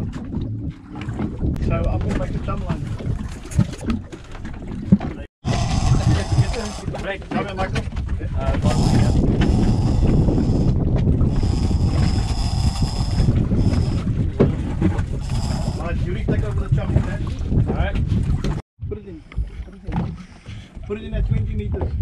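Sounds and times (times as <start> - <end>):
boat engine rumble: 0.0 - 22.0
wind buffeting microphone: 0.0 - 22.0
indistinct voices: 5.4 - 7.8.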